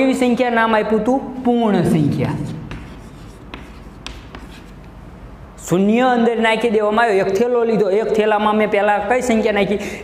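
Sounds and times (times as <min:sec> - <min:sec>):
chalk scratching on blackboard: 0:02.2 - 0:04.9
chalk tapping on board: 0:02.2 - 0:05.0.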